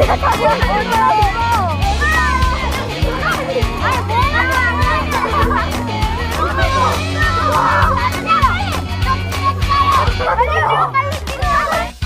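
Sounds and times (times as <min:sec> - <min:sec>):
children chattering excitedly: 0:00.0 - 0:12.0
music with bass and beat: 0:00.0 - 0:12.0.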